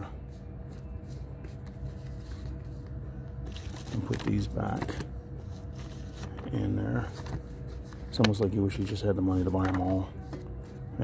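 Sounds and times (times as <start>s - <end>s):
steady low hum: 0.0s - 11.0s
comic books rustling in cart: 3.4s - 11.0s.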